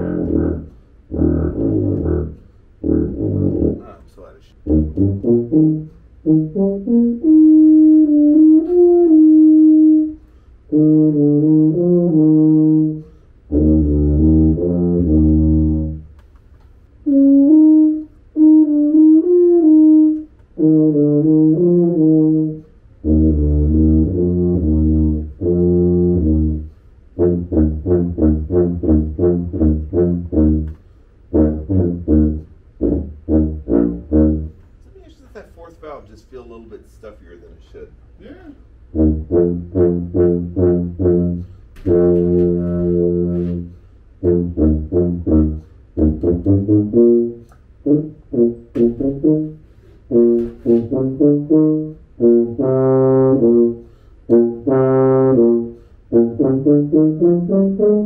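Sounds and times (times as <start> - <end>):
solo tuba playing: 0.0 - 16.2, 17.0 - 34.9, 38.7 - 58.0.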